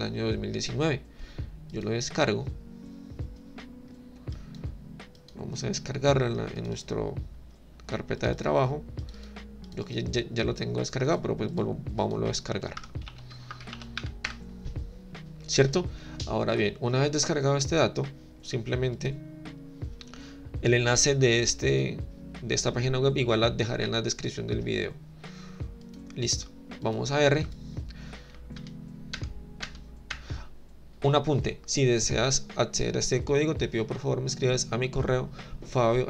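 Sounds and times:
soft background music: 0.0s - 36.0s.

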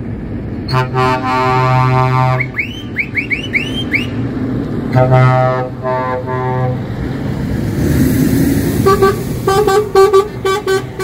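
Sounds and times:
diesel truck engine: 0.0s - 11.0s
truck air horn blasts: 0.7s - 3.9s, 4.9s - 6.9s, 8.8s - 11.0s.

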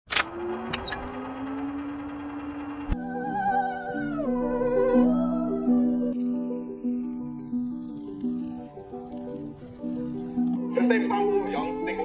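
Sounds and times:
low held rising tone: 0.3s - 10.6s.

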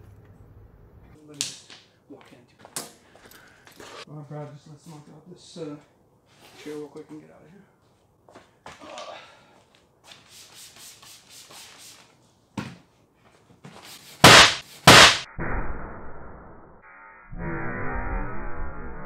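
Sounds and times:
airbag bangs: 14.2s - 15.3s
muffled slow motion burst: 15.3s - 19.0s.

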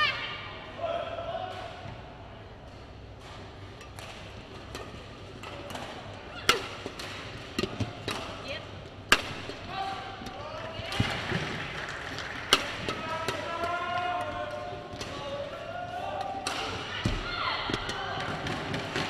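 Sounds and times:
rackets striking shuttlecock: 2.9s - 11.2s, 12.5s - 15.5s, 16.1s - 19.0s.

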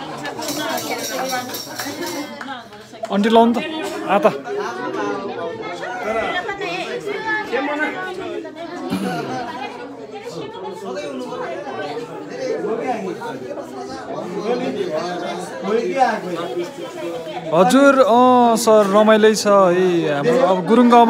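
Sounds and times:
overlapping chatter of people: 0.0s - 21.0s.

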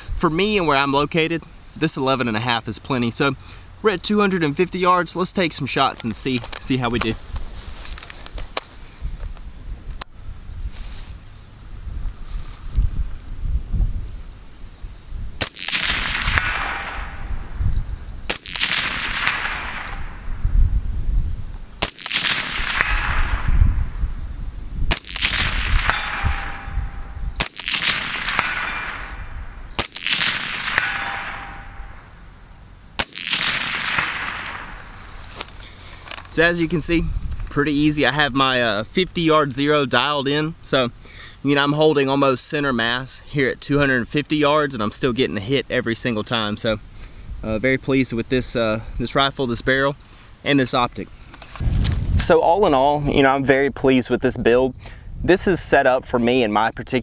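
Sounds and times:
echo of gunshots: 15.4s - 17.6s, 18.2s - 20.5s, 21.8s - 24.0s, 24.9s - 32.2s, 33.0s - 35.2s
suppressed rifle shots: 15.4s - 17.6s, 18.2s - 20.4s, 21.8s - 24.0s, 24.9s - 32.3s, 33.0s - 35.6s.

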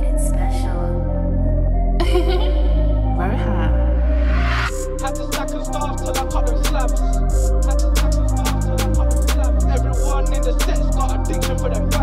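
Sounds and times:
instrumental rap intro: 3.1s - 12.0s.

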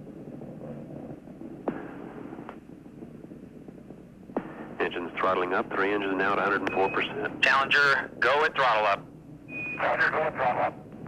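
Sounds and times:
radio line hiss and hum: 0.0s - 11.0s.

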